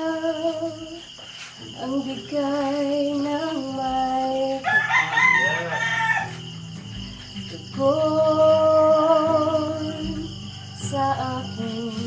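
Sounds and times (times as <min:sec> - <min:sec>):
rooster crowing: 0:04.6 - 0:06.7, 0:10.3 - 0:11.9.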